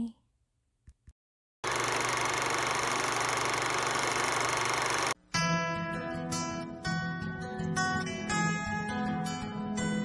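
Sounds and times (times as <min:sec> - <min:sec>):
film projector whirring clatter: 0:01.6 - 0:05.2.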